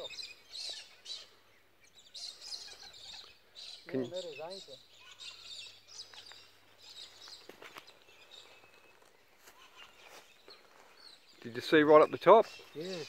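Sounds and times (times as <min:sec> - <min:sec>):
bird chirps and calls: 0:00.0 - 0:13.0.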